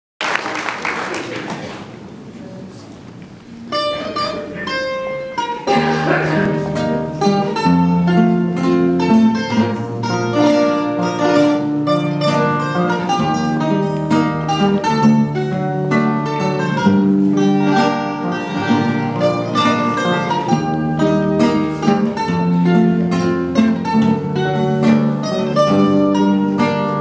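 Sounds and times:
guitars playing instrumental: 0:03.4 - 0:27.0.

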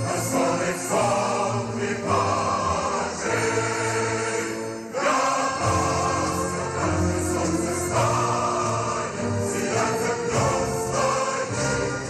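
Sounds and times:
choir singing: 0:00.0 - 0:12.0.

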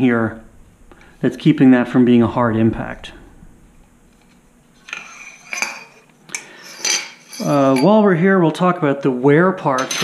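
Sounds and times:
metal parts clinking and scraping: 0:04.2 - 0:08.0.

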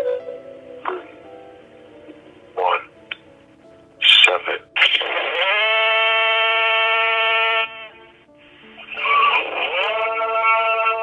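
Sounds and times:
buzzy rising tone: 0:04.8 - 0:10.2.

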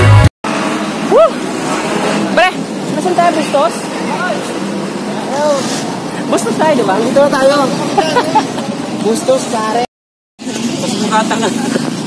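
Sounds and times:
music: 0:00.0 - 0:00.3
street traffic noise: 0:00.0 - 0:12.0.

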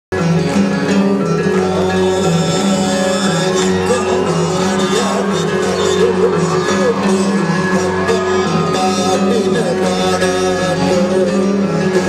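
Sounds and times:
live band playing: 0:00.1 - 0:12.0.

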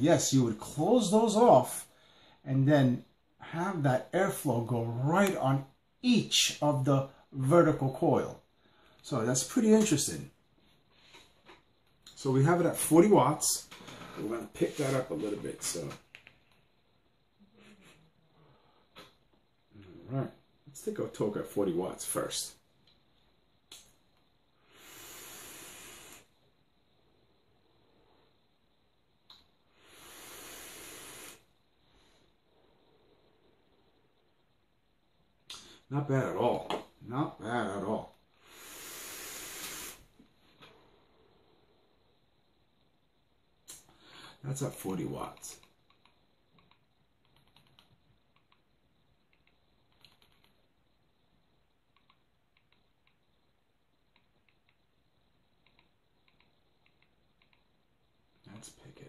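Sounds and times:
exhaled vapor hiss: 0:00.0 - 0:47.2, 0:52.6 - 0:59.0
air hissing through vape atomizer: 0:13.7 - 0:15.8, 0:24.5 - 0:26.5, 0:29.3 - 0:33.6, 0:38.4 - 0:41.6
faint small clicks: 0:23.6 - 0:24.3, 0:29.2 - 0:29.5, 0:45.3 - 0:48.7, 0:49.3 - 0:50.7, 0:51.9 - 0:53.3, 0:54.1 - 0:54.9, 0:55.6 - 0:57.8.

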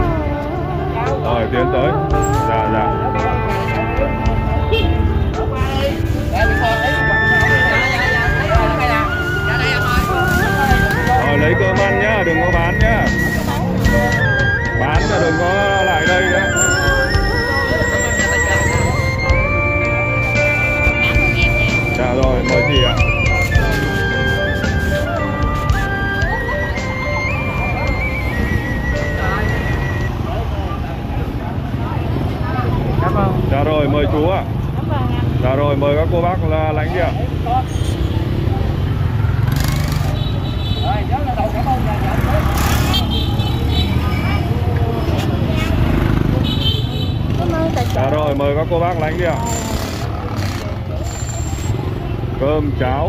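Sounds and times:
background music: 0:00.0 - 0:37.4
indistinct voices of people: 0:00.0 - 0:53.0
motorbike and road traffic: 0:00.0 - 0:53.0.

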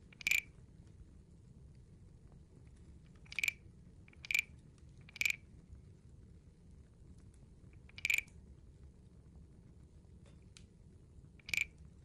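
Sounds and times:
wooden guiro croaking rasps: 0:00.1 - 0:00.5, 0:03.3 - 0:04.5, 0:05.1 - 0:05.4, 0:07.8 - 0:08.3, 0:11.4 - 0:11.8.

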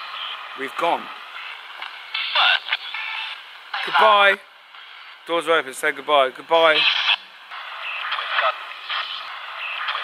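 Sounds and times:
radio static bursts: 0:00.0 - 0:05.4, 0:06.4 - 0:10.0.

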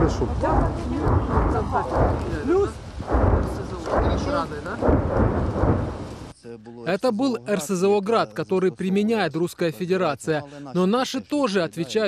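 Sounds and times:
distant rocket launcher booms: 0:00.0 - 0:06.3.

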